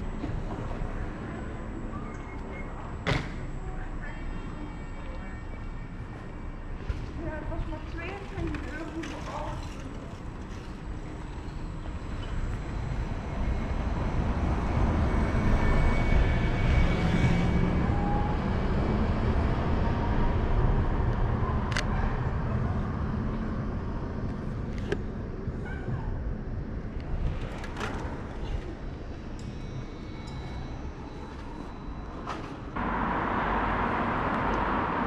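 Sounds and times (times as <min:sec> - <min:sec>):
city traffic rumble: 0:00.0 - 0:35.0.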